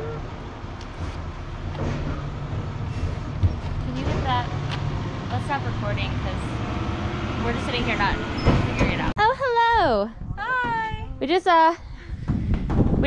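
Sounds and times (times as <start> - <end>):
motor vehicle engine rumble: 0.0 - 13.0
woman speaking loudly: 8.8 - 11.8.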